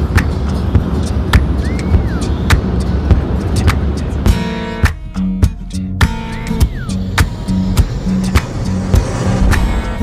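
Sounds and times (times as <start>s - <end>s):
car road rumble from inside: 0.0s - 10.0s
rising and falling squeak: 6.1s - 10.0s.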